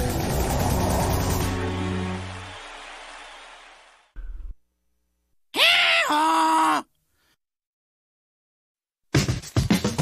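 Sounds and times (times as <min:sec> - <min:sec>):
cartoon donkey braying: 0:05.6 - 0:06.9.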